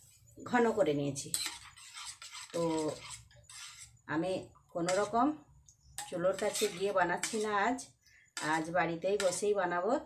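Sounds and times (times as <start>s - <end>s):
metal spoon scraping steel bowl: 1.1s - 5.4s, 6.0s - 9.8s.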